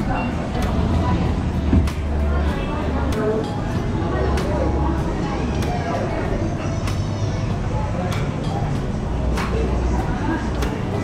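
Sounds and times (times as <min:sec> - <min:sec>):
restaurant voices: 0:00.0 - 0:11.0.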